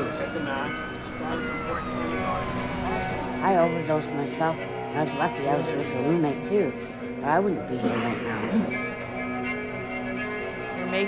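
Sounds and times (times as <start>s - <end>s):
ambulance siren wailing: 0.0s - 7.8s.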